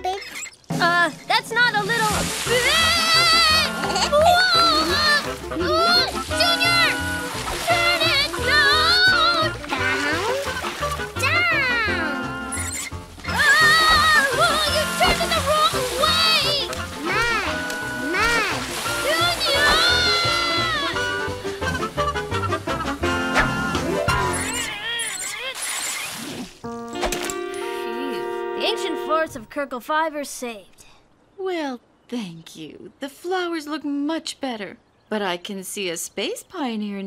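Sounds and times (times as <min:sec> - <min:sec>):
cartoon background music: 0:00.0 - 0:25.4, 0:26.6 - 0:29.8
garden hose spraying water: 0:01.6 - 0:11.2, 0:12.5 - 0:22.0, 0:24.4 - 0:26.7
children crying out: 0:13.3 - 0:21.2.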